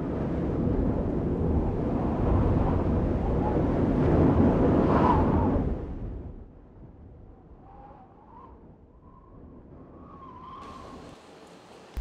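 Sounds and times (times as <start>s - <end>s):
howling wind: 0.0s - 12.0s.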